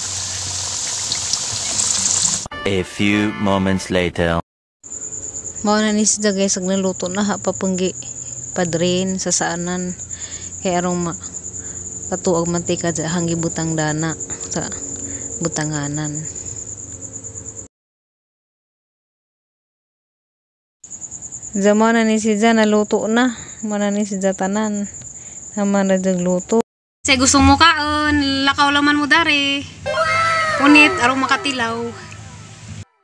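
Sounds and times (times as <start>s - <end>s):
fries sizzling in hot oil: 0.0s - 2.5s
pulsing insect trill: 4.8s - 17.7s, 20.9s - 32.6s
voice trailing off: 29.8s - 32.6s.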